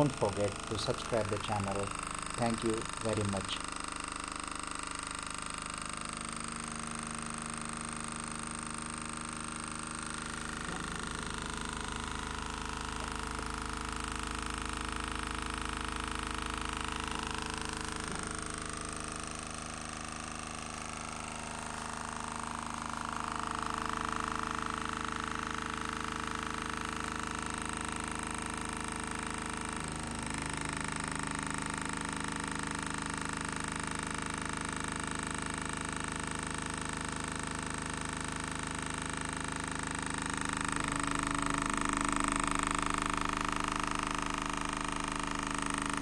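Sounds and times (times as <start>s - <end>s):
small electric motor whining: 0.0s - 46.0s.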